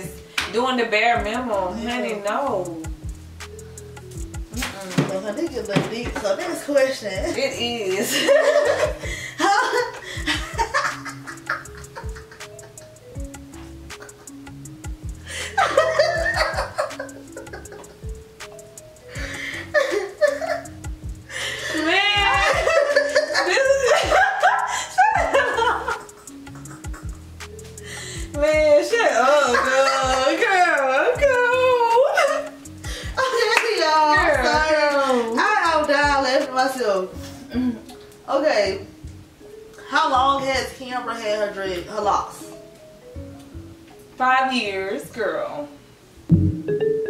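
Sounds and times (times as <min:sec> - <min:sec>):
background music with a beat: 0:01.2 - 0:36.6, 0:46.3 - 0:47.0
women laughing: 0:07.2 - 0:13.0, 0:13.6 - 0:14.6, 0:15.3 - 0:18.1, 0:19.2 - 0:27.3, 0:29.1 - 0:33.6.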